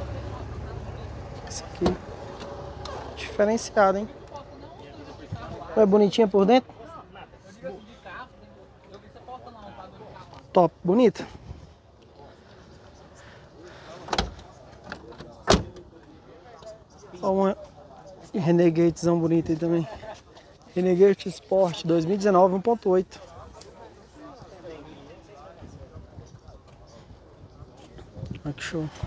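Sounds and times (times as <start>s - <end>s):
faint voices of people: 0.0s - 29.0s
van door shutting: 14.0s - 15.9s.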